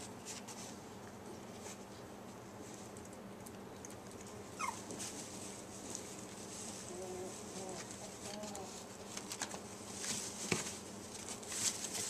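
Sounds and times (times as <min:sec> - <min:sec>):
puppy whimpering: 0:04.6 - 0:04.9.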